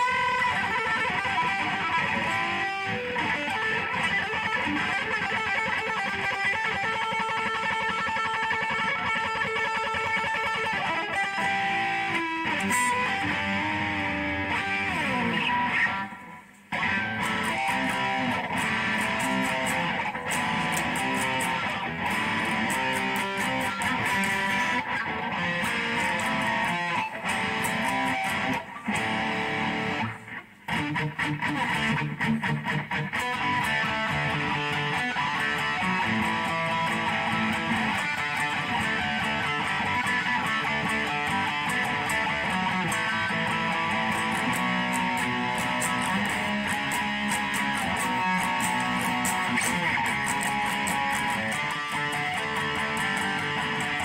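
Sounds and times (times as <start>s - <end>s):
electric guitar riffs: 0.0s - 54.0s.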